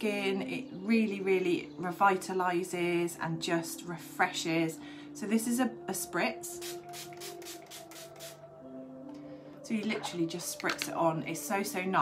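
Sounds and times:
soft background music: 0.0s - 12.0s
spray bottle hissing sprays: 6.6s - 8.4s.

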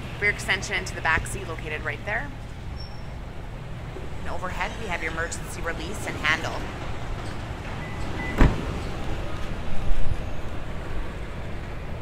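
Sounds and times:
car trunk lid shutting: 8.2s - 8.9s.

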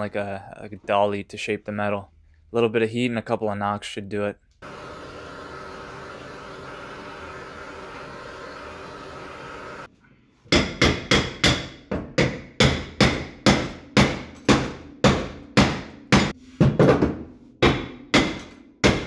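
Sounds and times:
gas torch hissing: 4.6s - 9.9s.

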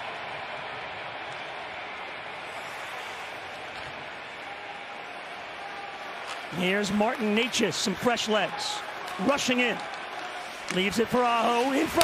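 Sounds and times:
ice hockey arena ambience: 0.0s - 12.0s.

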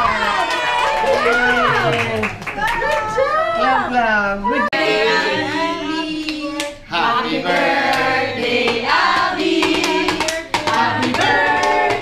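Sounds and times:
adults singing together: 4.6s - 12.0s
hand-clapping: 7.5s - 12.0s.

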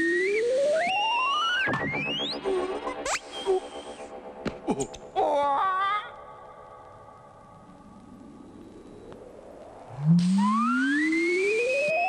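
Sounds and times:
high whistling tone: 0.0s - 4.1s, 9.9s - 12.0s
rising electronic tone: 0.2s - 4.4s, 7.4s - 12.0s.

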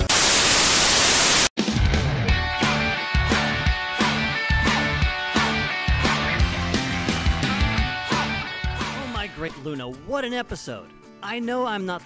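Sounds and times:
white-noise static burst: 0.0s - 1.5s
guitar-led rock music: 1.6s - 12.0s.

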